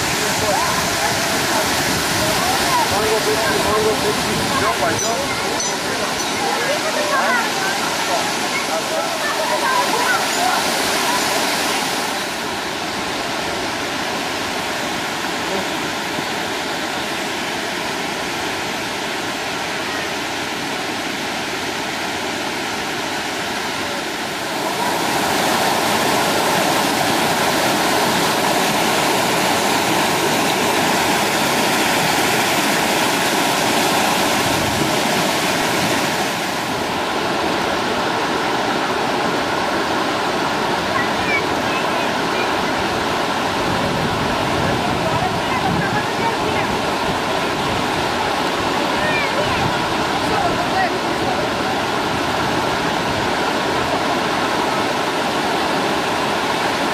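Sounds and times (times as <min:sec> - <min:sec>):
waterfall rushing: 0:00.0 - 0:56.9.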